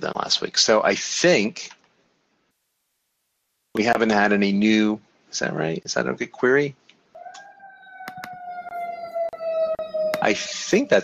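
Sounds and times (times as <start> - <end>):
sharp clicks: 6.9 - 8.4
held whining tone: 7.2 - 11.0.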